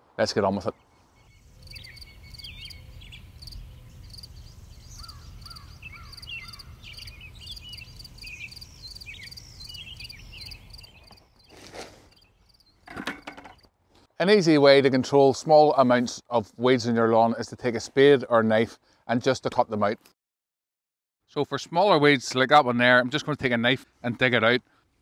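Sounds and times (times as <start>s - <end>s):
birds chirping: 0.4s - 13.7s.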